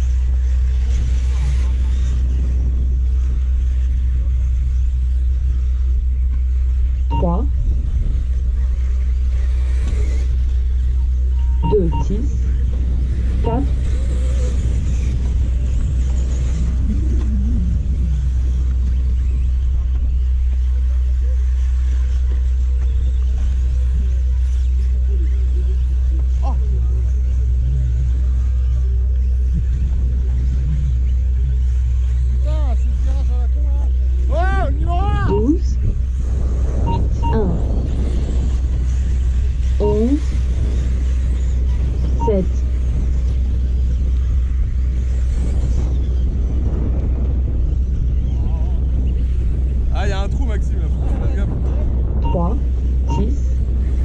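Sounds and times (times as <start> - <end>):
electric rc car motors whining: 0.0 - 49.4
low rumble: 0.0 - 54.0.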